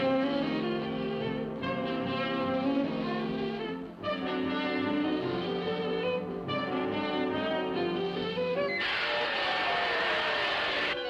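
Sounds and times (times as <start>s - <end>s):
cartoon rushing hiss with whistle: 8.8s - 11.0s.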